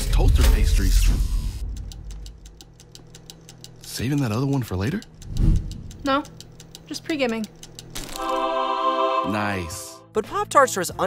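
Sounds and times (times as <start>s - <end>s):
low steady hum: 0.0s - 8.5s
fast light ticking: 1.3s - 8.0s.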